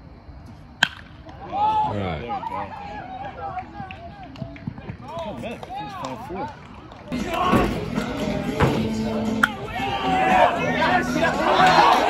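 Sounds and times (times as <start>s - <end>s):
bat hitting ball crack: 0.8s - 1.4s.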